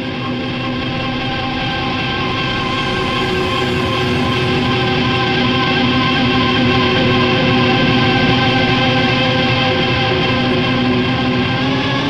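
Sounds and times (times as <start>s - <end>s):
noise music drone: 0.0s - 12.0s.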